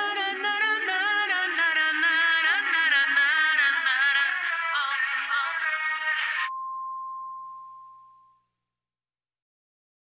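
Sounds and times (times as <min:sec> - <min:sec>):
dance-pop song with vocals: 0:00.0 - 0:06.5.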